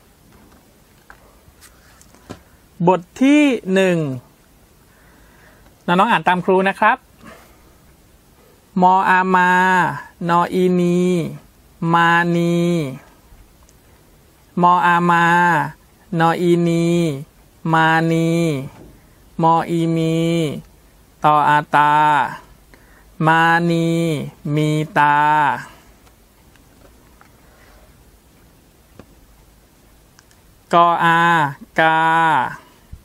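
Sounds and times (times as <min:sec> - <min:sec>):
man reading aloud: 0:02.8 - 0:04.4, 0:05.8 - 0:07.6, 0:08.7 - 0:13.3, 0:14.4 - 0:26.1, 0:30.6 - 0:33.0.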